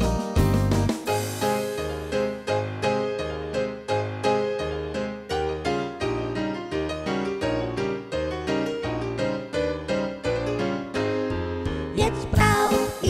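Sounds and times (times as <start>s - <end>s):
children's song on keyboard: 8.7s - 13.0s.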